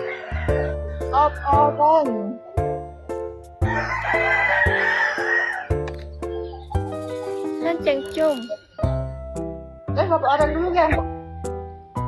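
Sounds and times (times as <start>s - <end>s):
rooster crowing: 0.0s - 1.5s, 3.6s - 5.8s.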